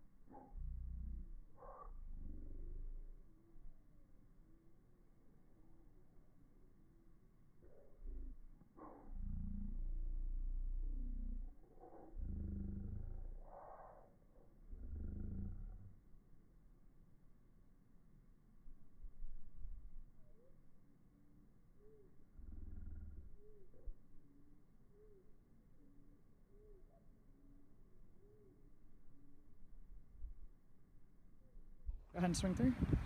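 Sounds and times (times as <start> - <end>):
deep drawn-out growl-like tones: 0.0 - 3.3, 7.6 - 16.1, 22.3 - 24.0
distant bird hooting: 0.3 - 3.6, 11.7 - 15.7, 24.9 - 25.9, 26.5 - 27.2.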